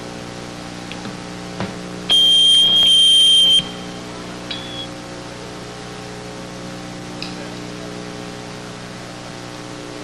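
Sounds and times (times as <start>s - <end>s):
amplifier hum: 0.0s - 10.0s
high-pitched feedback squeal: 2.1s - 5.0s.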